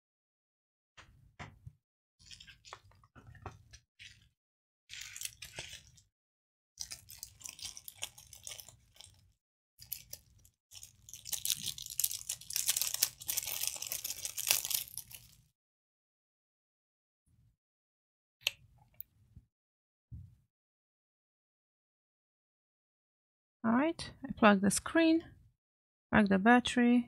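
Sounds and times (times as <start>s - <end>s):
plastic packaging rustling and crackling: 4.9s - 6.1s, 6.8s - 15.4s.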